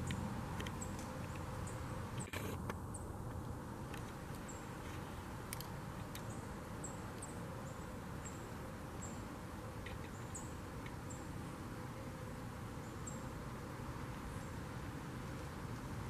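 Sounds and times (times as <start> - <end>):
steady low hiss: 0.0 - 16.0.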